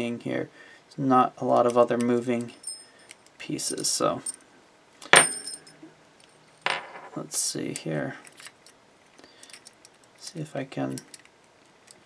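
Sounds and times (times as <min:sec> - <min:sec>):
small keys clinking: 0:02.4 - 0:04.4, 0:05.1 - 0:05.8.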